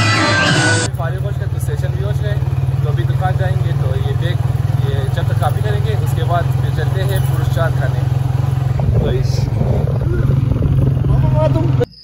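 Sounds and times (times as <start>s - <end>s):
motorcycle engine running: 0.8s - 12.0s
voices: 0.8s - 12.0s.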